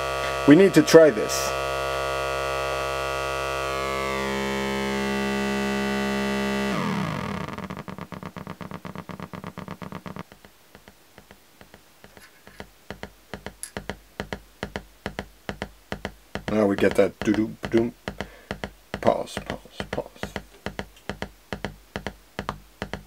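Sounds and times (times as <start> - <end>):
buzzy low synth tone: 0.0 - 10.4.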